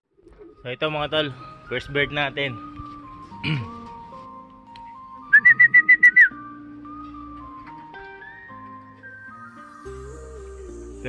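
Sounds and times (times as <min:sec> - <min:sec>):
background music: 0:00.1 - 0:11.0
person whistling short high notes: 0:05.3 - 0:06.4.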